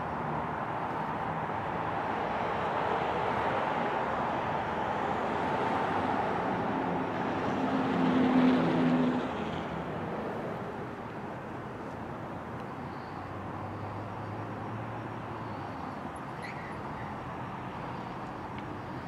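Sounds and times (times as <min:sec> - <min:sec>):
car passing: 0:00.3 - 0:11.0.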